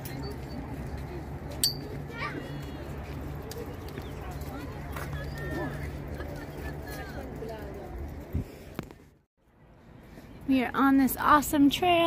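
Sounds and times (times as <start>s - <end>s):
people chatting: 10.5s - 12.0s.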